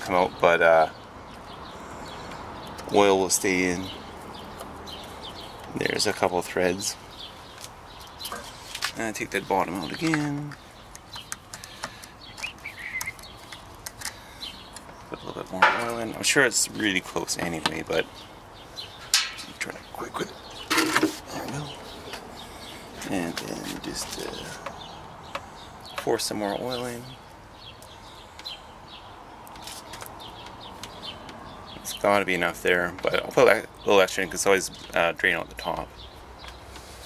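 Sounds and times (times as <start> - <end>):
bird chirping: 0.0 - 37.0.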